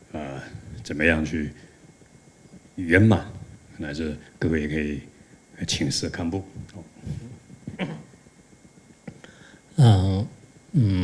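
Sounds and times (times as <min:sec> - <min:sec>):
people talking: 0:00.1 - 0:01.6, 0:02.8 - 0:08.0, 0:09.8 - 0:11.0
man's soft vocal sounds: 0:06.6 - 0:11.0.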